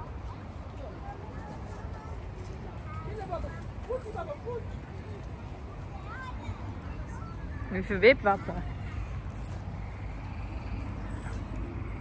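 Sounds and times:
distant children's voices: 0.0s - 12.0s.

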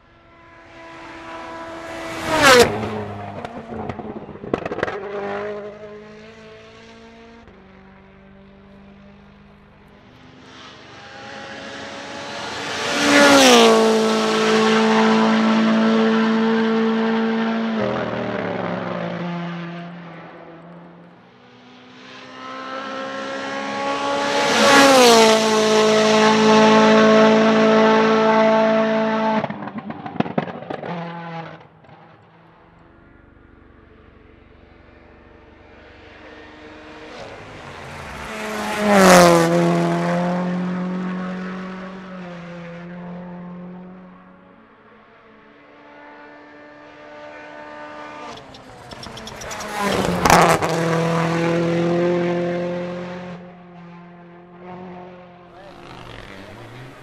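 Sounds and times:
rally cars passing at full throttle: 0.0s - 57.0s
exhaust cracks and pops: 3.4s - 5.0s, 29.4s - 30.9s.

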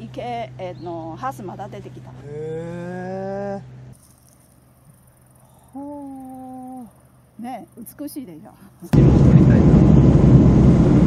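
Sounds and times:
person's drawn-out vocal sound: 2.2s - 3.7s.

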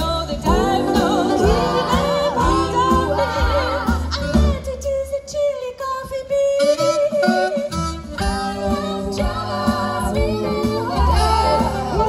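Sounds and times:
double bass: 0.0s - 5.0s, 7.6s - 12.0s
women's vocal ensemble singing: 0.0s - 6.0s, 7.2s - 12.0s.

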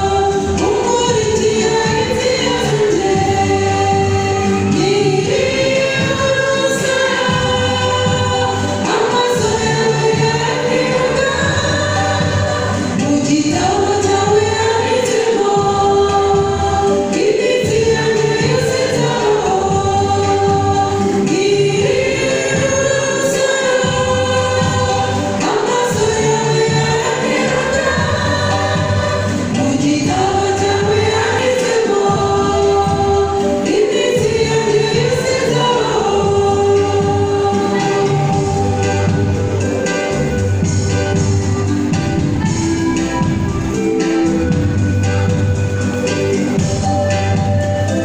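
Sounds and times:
church choir singing: 0.0s - 48.0s.

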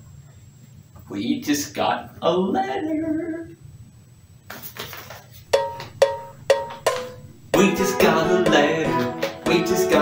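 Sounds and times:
cowbell-like percussion notes: 5.5s - 9.6s.

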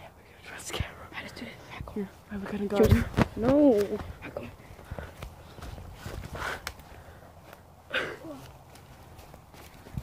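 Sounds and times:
footsteps through undergrowth: 2.8s - 10.0s.

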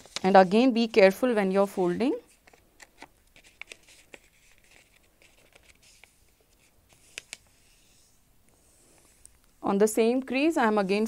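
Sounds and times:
paper rustling: 0.0s - 0.7s, 1.7s - 8.2s.

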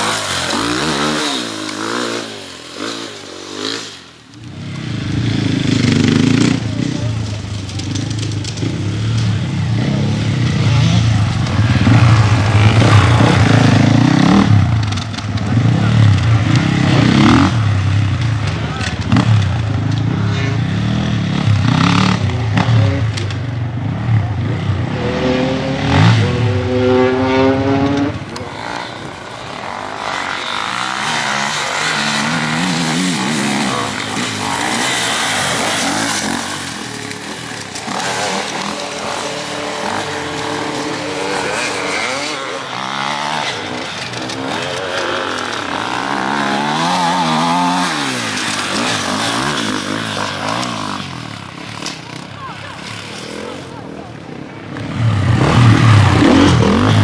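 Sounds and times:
dirt bike engines revving: 0.0s - 57.0s.

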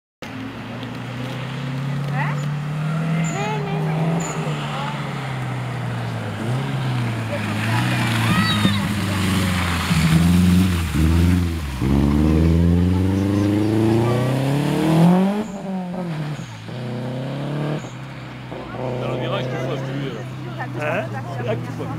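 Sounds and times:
rally car engine passing: 0.9s - 21.9s.

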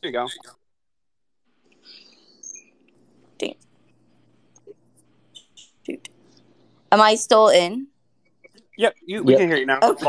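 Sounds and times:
microphone hiss and hum: 1.7s - 10.0s.

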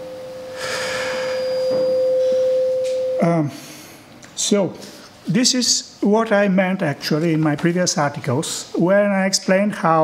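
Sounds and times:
steady feedback tone: 0.0s - 3.5s.

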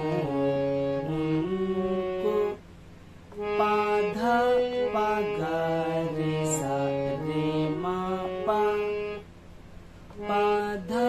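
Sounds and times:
harmonium playing slow melody: 0.0s - 9.4s, 10.0s - 11.0s.

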